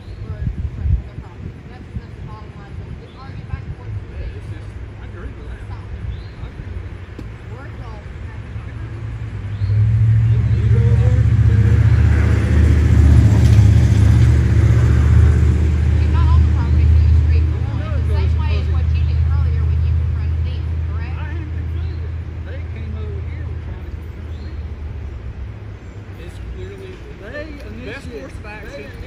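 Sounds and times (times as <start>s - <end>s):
vehicle engine rumbling: 0.0s - 29.0s.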